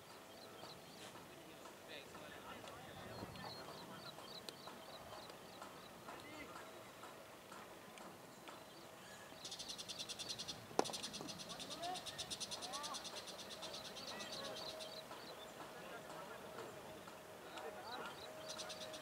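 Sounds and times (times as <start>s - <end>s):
faint bird chirps: 8.3s - 15.6s.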